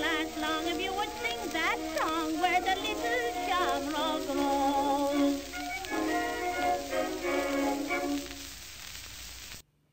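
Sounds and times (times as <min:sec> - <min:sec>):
band playing held chords: 0:00.0 - 0:08.6
record surface hiss: 0:00.0 - 0:09.9.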